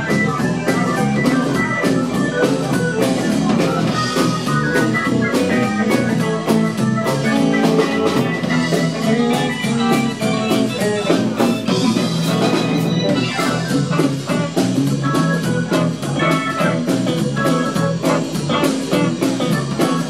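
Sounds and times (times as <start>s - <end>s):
bass: 0.0s - 20.0s
drum kit beat: 0.0s - 20.0s
electric guitars: 0.0s - 20.0s
keyboard: 0.0s - 20.0s.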